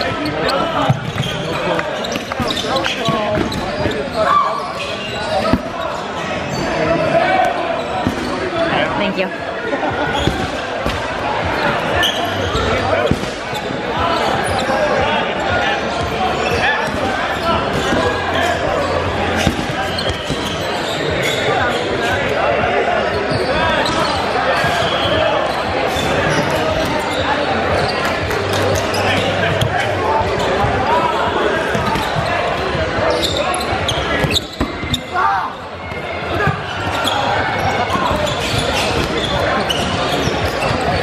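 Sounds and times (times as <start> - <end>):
shouting and chatter: 0.0 - 41.0
dodgeballs bouncing on hardwood floor: 10.1 - 13.5, 16.9 - 20.6.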